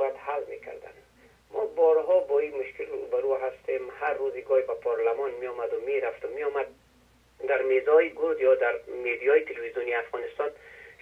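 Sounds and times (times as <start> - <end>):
person talking over telephone: 0.0 - 6.8, 7.4 - 11.0.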